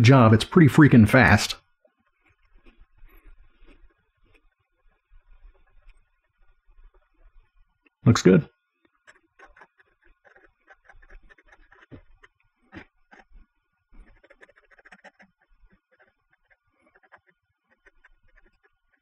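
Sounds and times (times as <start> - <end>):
pen scratching on paper: 9.0 - 13.4, 14.0 - 18.8.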